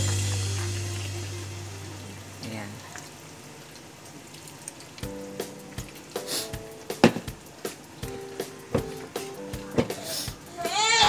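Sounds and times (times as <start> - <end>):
background music: 0.0 - 2.4, 5.0 - 11.0
faint sizzling: 0.0 - 11.0.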